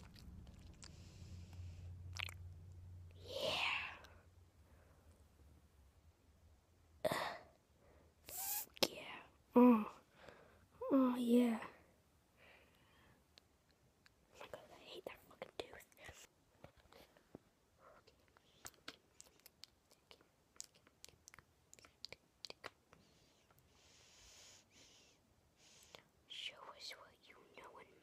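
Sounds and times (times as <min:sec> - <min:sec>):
faint whispering: 0:03.2 - 0:04.2, 0:08.3 - 0:10.0, 0:14.3 - 0:17.2, 0:17.8 - 0:19.0, 0:19.9 - 0:28.0.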